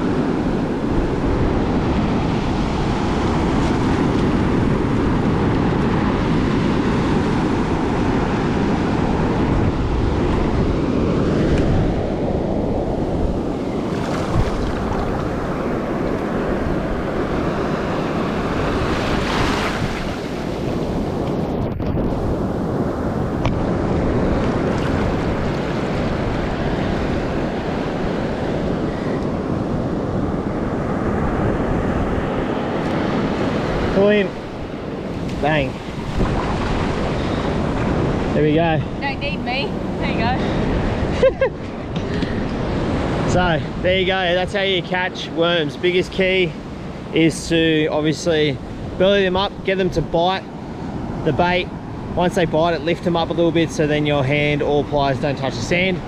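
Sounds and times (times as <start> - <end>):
surf washing up the beach: 0.0 - 56.0
wind rumbling on microphone: 0.0 - 56.0.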